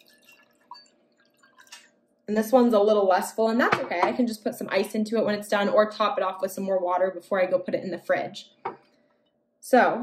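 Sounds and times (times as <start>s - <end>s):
water drips: 0.0s - 2.2s
water trickling into glass: 0.0s - 2.2s.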